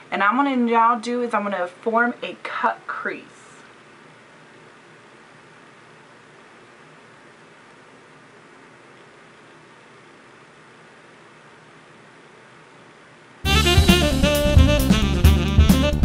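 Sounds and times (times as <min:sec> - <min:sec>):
faint steady hiss: 0:00.0 - 0:13.5.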